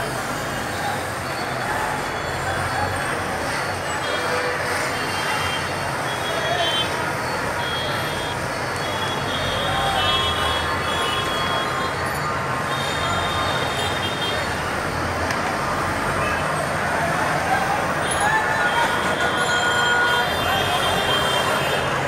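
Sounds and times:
city road traffic: 0.0s - 22.0s.

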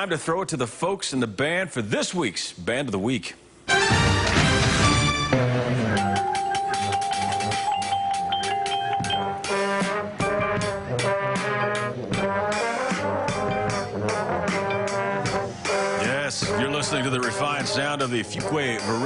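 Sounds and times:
brass chords: 3.7s - 19.0s.

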